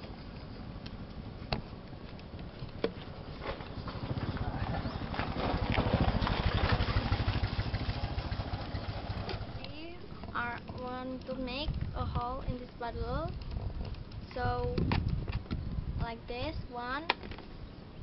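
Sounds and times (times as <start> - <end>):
vehicle engine rumble passing: 0.2 - 10.5.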